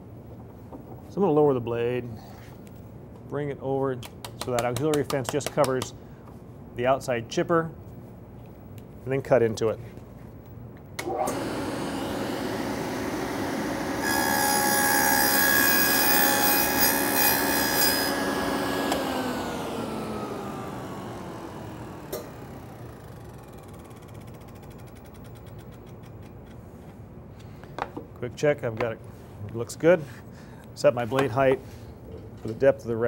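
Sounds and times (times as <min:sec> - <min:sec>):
saw cutting into wood: 0:11.0 - 0:23.0
saw blade whine coasting down: 0:11.0 - 0:25.0
table saw running: 0:11.0 - 0:25.1.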